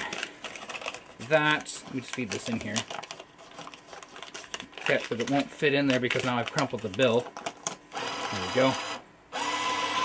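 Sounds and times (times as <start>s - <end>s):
bill acceptor feed mechanism: 7.9s - 10.0s.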